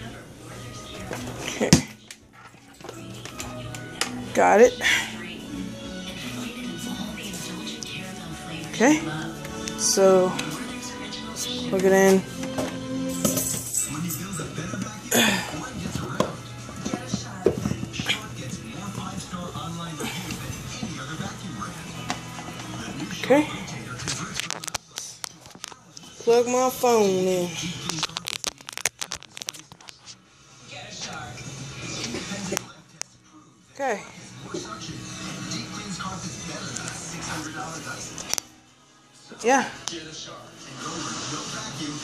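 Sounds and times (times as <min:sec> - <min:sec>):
background music: 0:00.0 - 0:42.0
television voices: 0:00.0 - 0:42.0.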